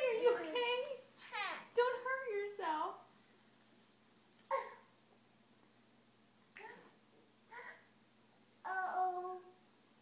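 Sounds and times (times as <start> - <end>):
toddler vocal sound: 6.6 - 7.9, 8.6 - 9.6.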